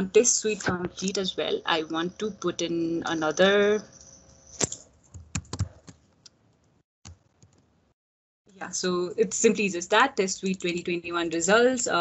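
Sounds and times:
computer keyboard typing: 4.6s - 6.0s.

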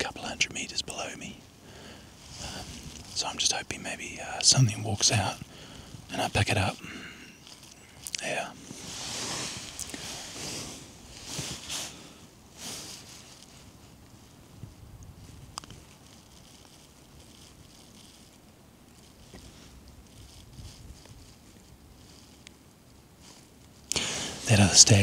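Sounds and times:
faint wind low rumble: 0.0s - 25.0s
jacket rustling: 8.6s - 14.1s.

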